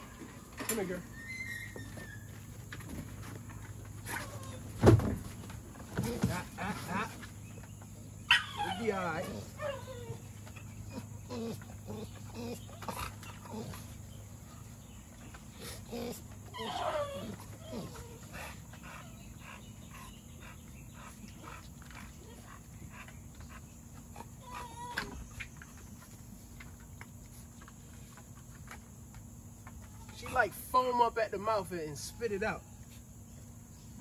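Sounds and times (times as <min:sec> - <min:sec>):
dog whining and grunting: 0:00.0 - 0:02.6, 0:05.9 - 0:23.1, 0:24.0 - 0:25.5.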